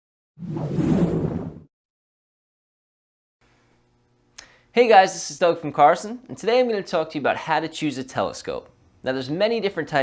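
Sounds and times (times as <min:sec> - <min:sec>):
deep whoosh: 0:00.4 - 0:01.7.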